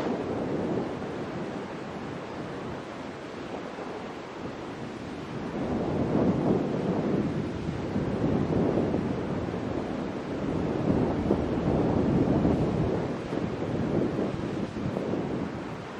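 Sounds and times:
wind buffeting microphone: 0.0s - 15.9s.

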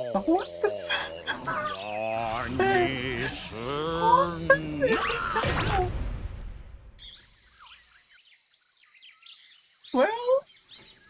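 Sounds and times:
low rumble: 1.4s - 7.2s
bird chirps: 7.0s - 11.0s.

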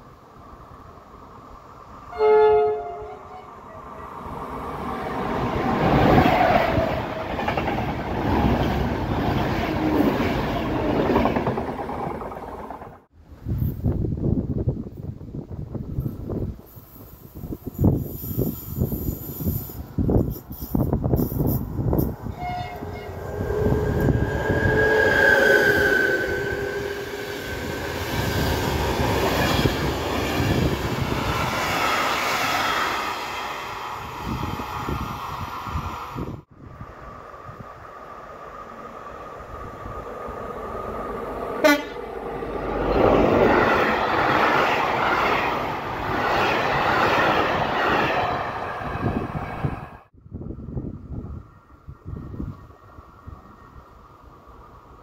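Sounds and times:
train wheel and rail noise: 0.0s - 55.0s
train horn: 2.1s - 4.1s, 22.3s - 27.3s, 41.6s - 42.1s.

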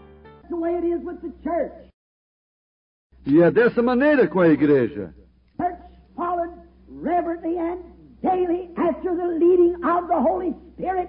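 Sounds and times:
man speaking: 3.2s - 5.9s.

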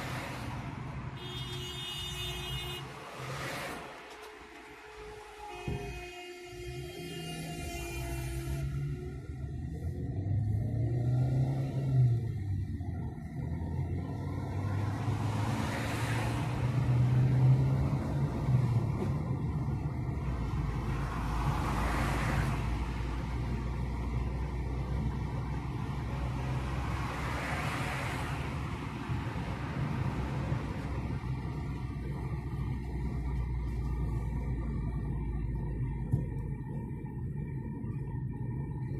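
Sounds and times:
car engine: 0.0s - 38.9s
road noise inside car: 0.0s - 38.9s.

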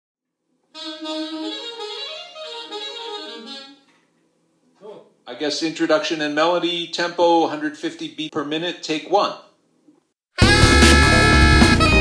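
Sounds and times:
solo saxophone melody: 0.7s - 3.9s, 10.4s - 12.0s.

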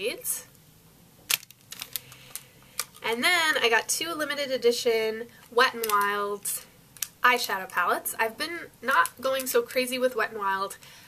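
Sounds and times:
plastic packaging clicks: 1.3s - 3.0s.

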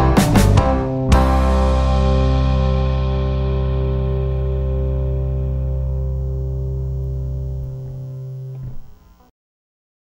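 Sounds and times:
guitar and bass chord ringing: 0.0s - 9.3s.

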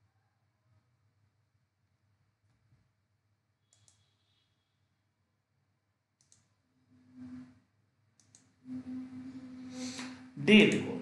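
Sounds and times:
computer mouse clicks: 3.7s - 4.3s, 6.2s - 6.6s, 8.2s - 8.6s.

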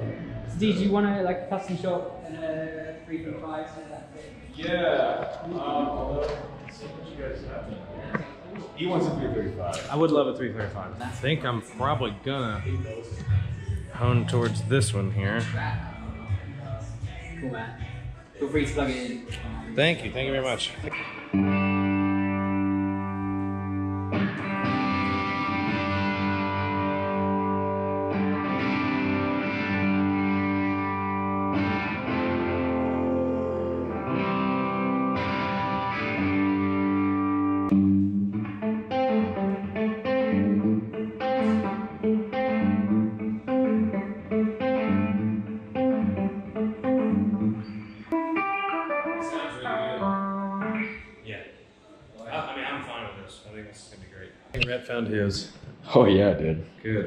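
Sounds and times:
electric guitar playing: 11.0s - 16.6s, 18.7s - 51.2s.

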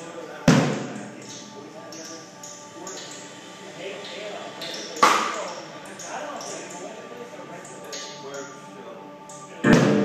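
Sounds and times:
band playing: 9.6s - 10.0s
loud drum hit: 9.7s - 10.0s.

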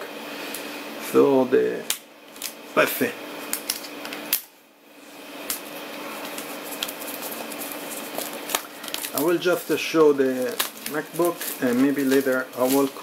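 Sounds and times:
plastic shrink-wrap crinkling: 6.2s - 13.0s.

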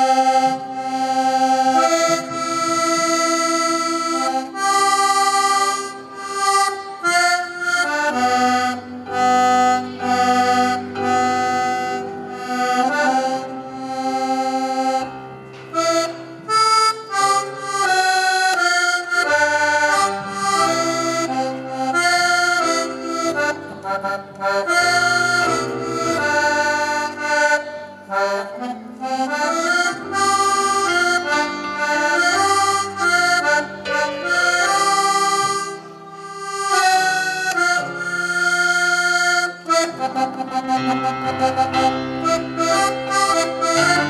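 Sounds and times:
piano accordion melody: 0.0s - 44.0s.

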